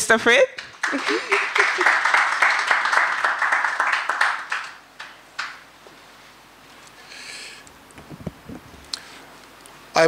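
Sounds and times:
audience applause: 0.7s - 5.6s.

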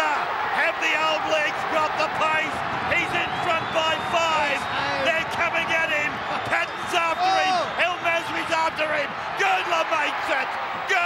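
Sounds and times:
male commentator speaking: 0.0s - 11.0s
stadium crowd noise: 0.0s - 11.0s.

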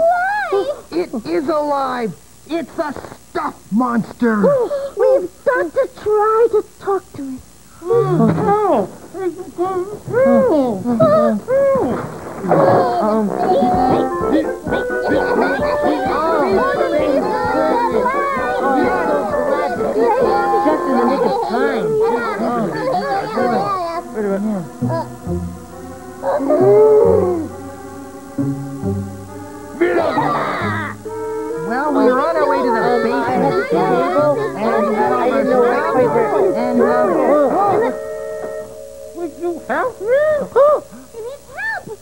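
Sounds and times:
voices wailing: 7.8s - 42.0s.

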